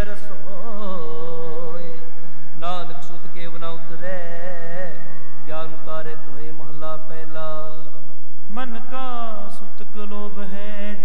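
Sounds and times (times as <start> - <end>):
man singing a hymn: 0.0 - 11.0.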